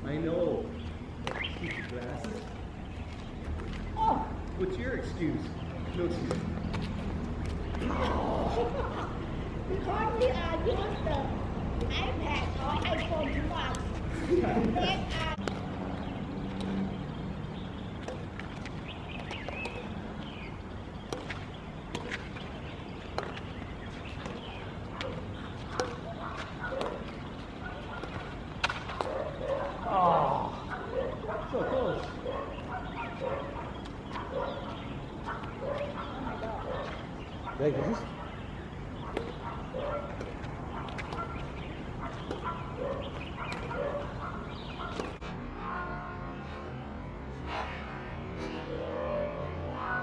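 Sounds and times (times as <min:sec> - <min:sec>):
outdoor background noise: 0:00.0 - 0:50.0
racket hitting shuttlecock: 0:14.5 - 0:15.8, 0:25.7 - 0:27.2.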